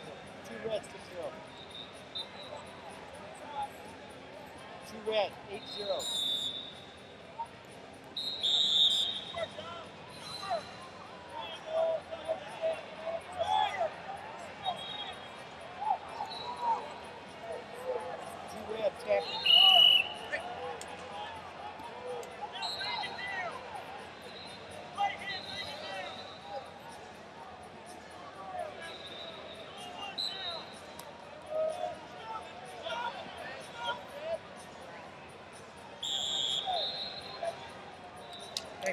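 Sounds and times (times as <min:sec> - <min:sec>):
people shouting and talking: 0:00.0 - 0:38.9
referee whistle blasts: 0:01.5 - 0:02.7, 0:05.6 - 0:07.1, 0:08.2 - 0:10.8, 0:14.6 - 0:15.4, 0:16.2 - 0:16.8, 0:19.2 - 0:20.4, 0:22.6 - 0:23.4, 0:24.2 - 0:26.4, 0:28.9 - 0:31.0, 0:36.0 - 0:37.6, 0:38.3 - 0:38.7.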